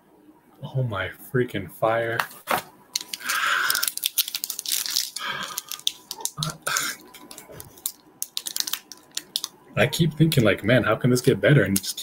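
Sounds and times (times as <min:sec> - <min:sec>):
foil wrapper crinkling and tearing: 0:03.0 - 0:09.5.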